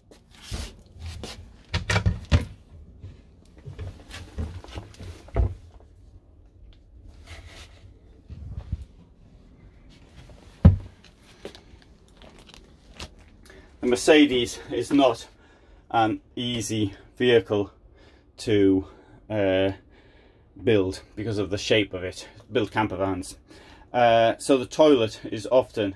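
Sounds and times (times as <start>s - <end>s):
footsteps in small cabin: 0.0s - 15.7s.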